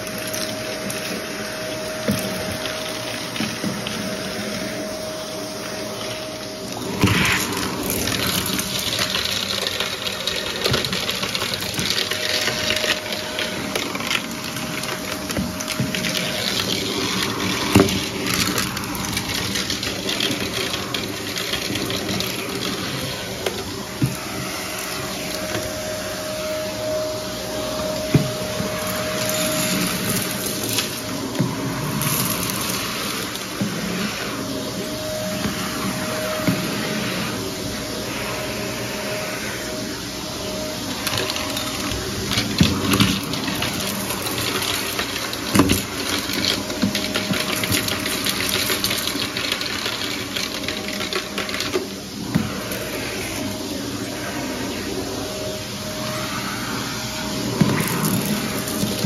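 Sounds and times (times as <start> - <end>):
vacuum cleaner running: 0.0 - 59.0
debris clicking up vacuum wand: 5.7 - 37.7, 40.4 - 53.7, 57.3 - 59.0.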